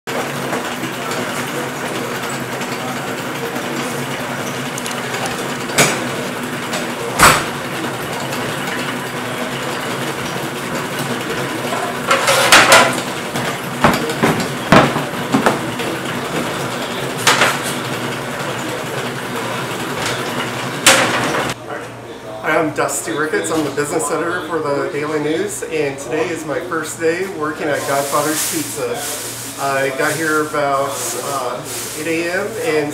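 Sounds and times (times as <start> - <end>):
kitchen machinery hum: 0.1 - 32.9
metal pans clattering on counter: 11.7 - 15.6.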